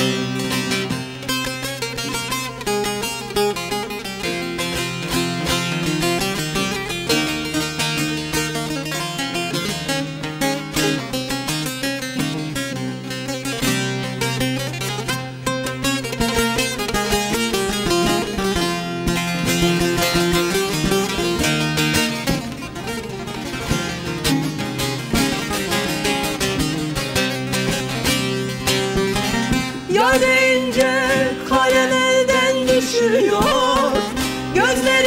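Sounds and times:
plucked lutes playing: 0:00.0 - 0:35.0.

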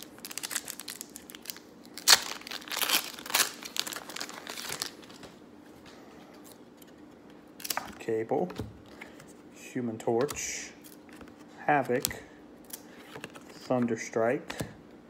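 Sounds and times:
foil wrapper tearing and crinkling: 0:00.0 - 0:05.2.

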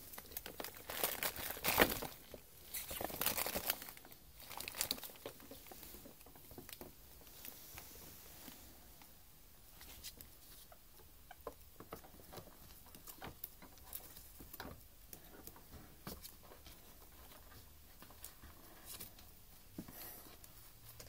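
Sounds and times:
ferrets scrabbling and scratching: 0:00.0 - 0:08.8, 0:09.6 - 0:21.0.

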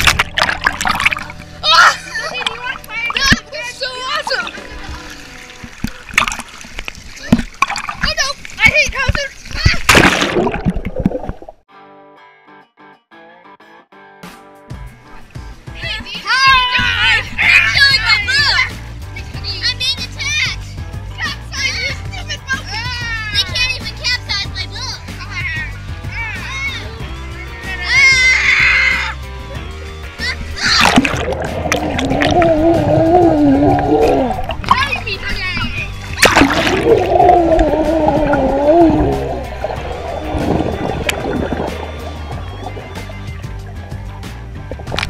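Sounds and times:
muffled underwater rushing: 0:00.0 - 0:11.6, 0:30.2 - 0:45.0
children shouting and squealing: 0:01.6 - 0:05.1, 0:16.2 - 0:18.8, 0:25.4 - 0:31.1, 0:36.8 - 0:43.4
splash into pool: 0:04.3 - 0:11.6, 0:30.6 - 0:32.8, 0:36.1 - 0:43.4
music with low beat: 0:14.6 - 0:45.0.

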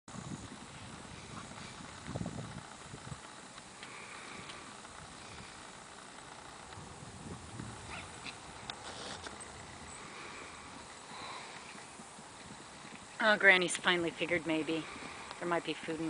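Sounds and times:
hoofbeats on grass: 0:00.1 - 0:16.0.

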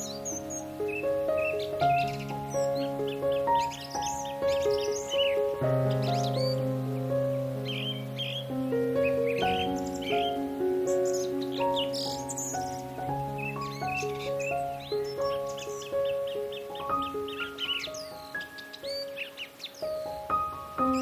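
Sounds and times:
bird chirps: 0:00.0 - 0:21.0
slow instrumental music: 0:00.0 - 0:21.0.

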